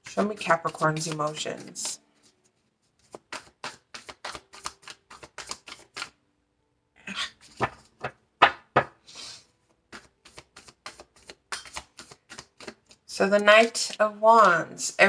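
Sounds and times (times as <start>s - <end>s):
cards being shuffled: 0.1s - 6.2s, 7.4s - 8.2s, 9.8s - 14.7s.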